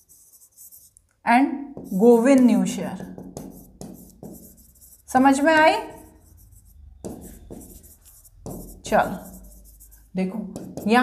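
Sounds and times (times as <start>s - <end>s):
stylus scratching on touchscreen: 0.0s - 1.0s, 1.8s - 11.0s.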